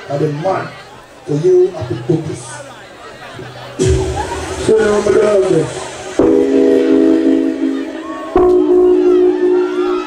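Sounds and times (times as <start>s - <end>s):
train horn chord blasts: 6.1s - 7.9s.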